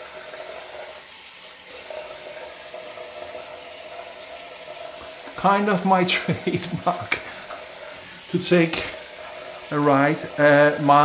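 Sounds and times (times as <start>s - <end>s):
tap water running into sink: 0.0s - 11.0s.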